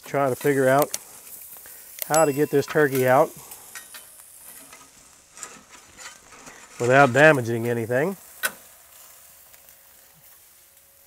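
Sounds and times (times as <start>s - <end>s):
faint grill sizzle: 0.0s - 11.0s
metal spatulas scraping: 5.4s - 7.2s.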